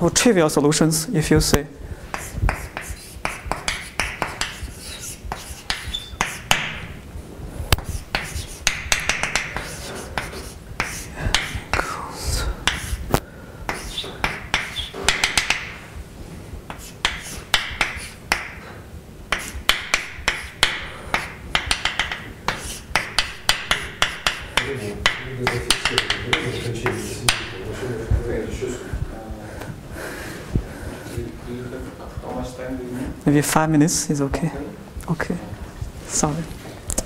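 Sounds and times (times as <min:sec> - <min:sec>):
chalk tapping on blackboard: 0:02.1 - 0:07.0, 0:07.7 - 0:11.9, 0:12.6 - 0:15.8, 0:16.7 - 0:18.6, 0:19.3 - 0:27.7.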